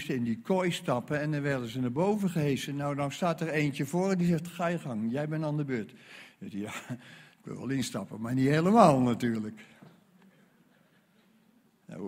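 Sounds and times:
man speaking: 0.0s - 9.8s.

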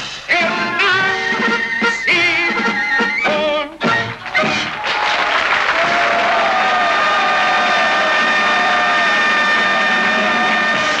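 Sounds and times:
audience applauding: 4.0s - 11.0s.

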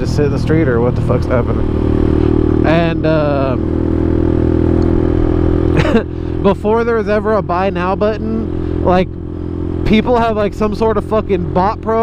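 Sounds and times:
motorcycle engine running steadily: 0.0s - 12.0s.

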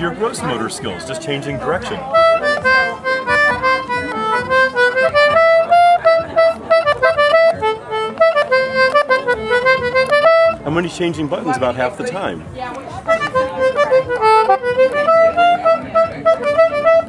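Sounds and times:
concertina melody: 0.0s - 17.0s.

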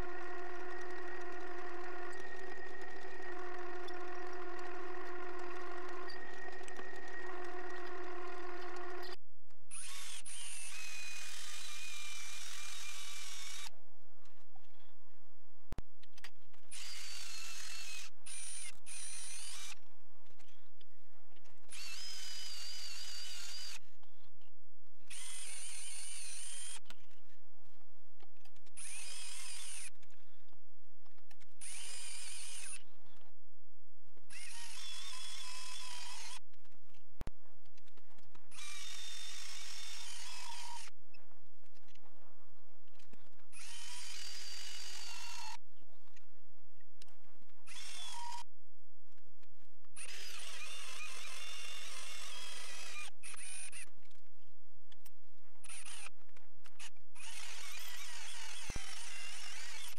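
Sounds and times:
drill motor whining: 0.0s - 13.7s, 16.7s - 19.8s, 21.7s - 23.8s, 25.1s - 26.8s, 28.8s - 29.9s, 31.6s - 32.8s, 34.3s - 36.4s, 38.5s - 40.9s, 43.6s - 45.6s, 47.7s - 48.4s, 50.0s - 53.8s, 55.7s - 56.1s, 57.2s - 59.9s.

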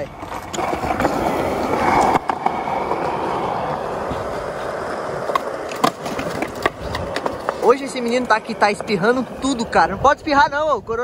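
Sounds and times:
skateboard wheels rolling: 0.0s - 11.0s.

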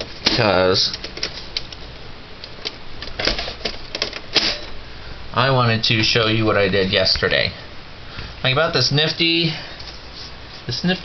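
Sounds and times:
computer humming: 0.0s - 11.0s
plastic and metal clicks and rattles: 2.4s - 4.6s.

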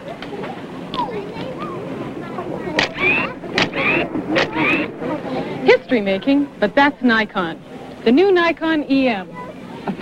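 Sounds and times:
motor drive winding whine: 2.8s - 5.0s.

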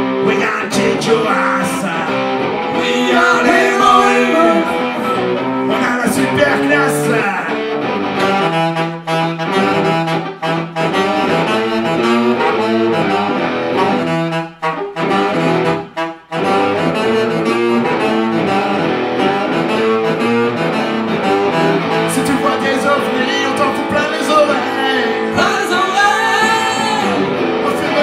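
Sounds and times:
acoustic band accompaniment: 0.0s - 28.0s
saxophone melody: 0.8s - 28.0s.

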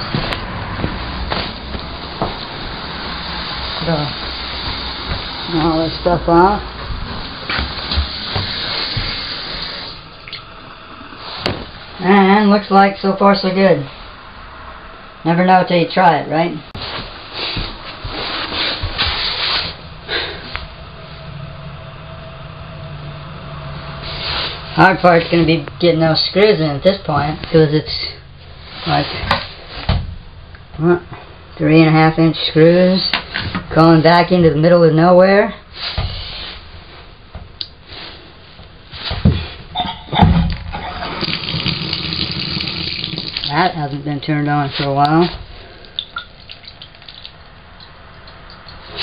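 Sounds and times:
low steady hum: 0.0s - 49.0s
water running from bathtub spout: 2.4s - 11.9s, 40.8s - 43.8s, 45.8s - 49.0s
rubbing and handling noise: 16.8s - 20.7s
knocks and clunks: 39.1s - 41.0s.

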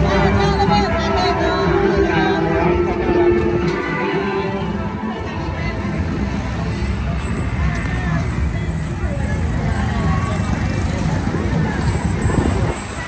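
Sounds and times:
motor vehicles running: 0.0s - 13.0s
people's voices: 0.0s - 13.0s.

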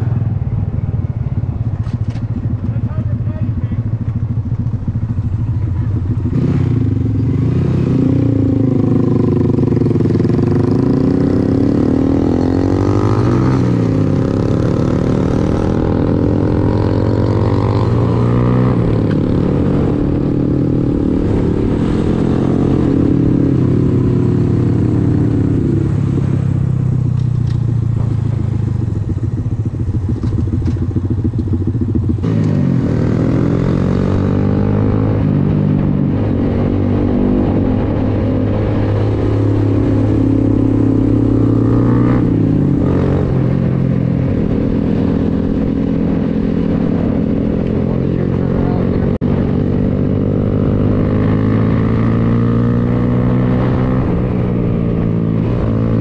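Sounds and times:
motorcycle engine while riding: 0.0s - 56.0s.

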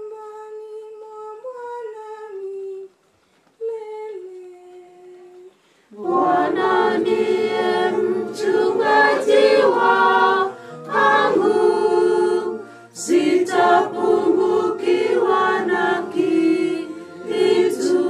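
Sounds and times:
congregation singing a hymn: 5.9s - 18.0s.

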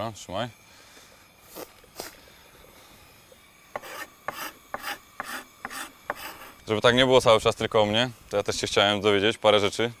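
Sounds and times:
carrot grating on metal grater: 3.7s - 6.6s
short scrapes: 3.8s - 6.6s.

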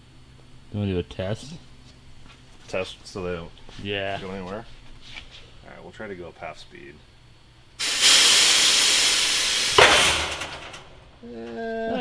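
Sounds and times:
hissing air rush: 7.8s - 11.0s.

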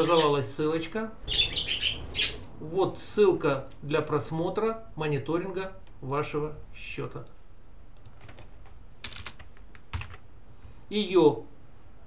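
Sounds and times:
keyboard and mouse clicks: 7.2s - 10.2s.

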